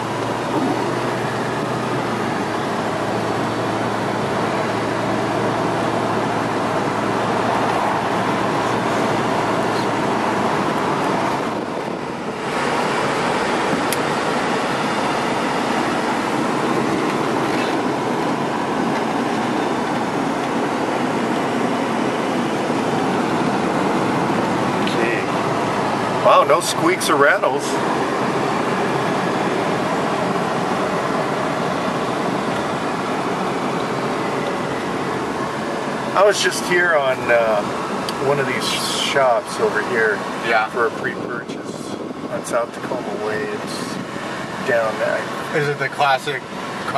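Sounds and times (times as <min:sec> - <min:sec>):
car engine: 0:00.0 - 0:46.9
wind noise: 0:10.1 - 0:14.8, 0:40.9 - 0:44.6.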